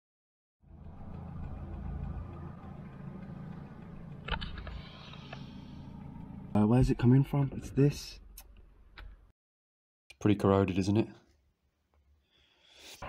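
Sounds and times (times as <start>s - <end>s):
car engine running: 0.7s - 8.1s.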